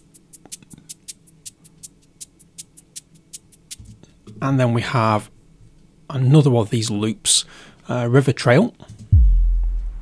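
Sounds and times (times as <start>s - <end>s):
electronic ticking percussion loop: 0.0s - 4.0s, 9.1s - 10.0s
faint low drone: 9.2s - 10.0s.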